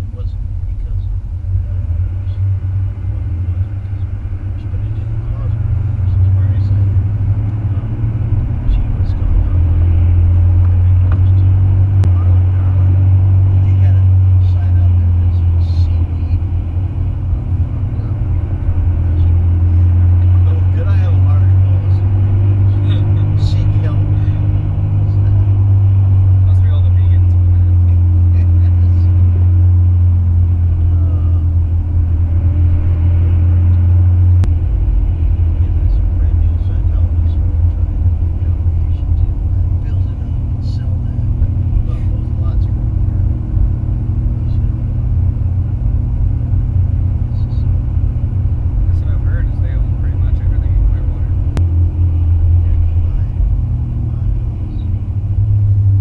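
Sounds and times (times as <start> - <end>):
indistinct conversation: 0.0 - 56.0
road noise inside cabin: 0.0 - 56.0
vehicle engine rumble: 0.0 - 56.0.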